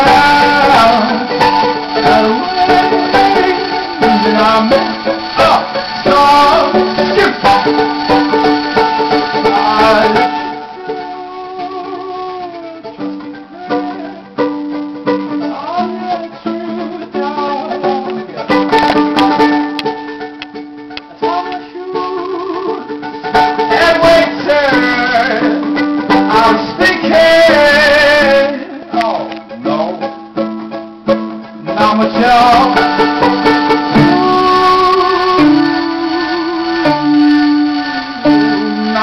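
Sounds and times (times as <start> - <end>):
man singing: 0.0 - 20.0, 21.0 - 30.4, 31.4 - 39.0
ukulele strumming: 0.0 - 39.0.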